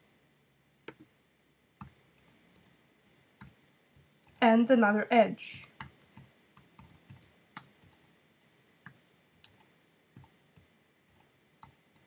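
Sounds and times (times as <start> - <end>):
keyboard typing clicks: 1.8 - 3.6, 5.6 - 12.0.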